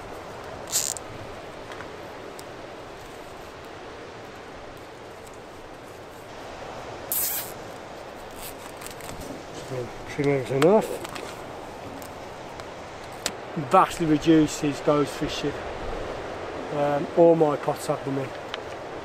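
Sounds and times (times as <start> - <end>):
scratchy rustles of twine and netting: 0.0 - 1.2, 7.1 - 12.3
outdoor background hiss: 0.0 - 19.0.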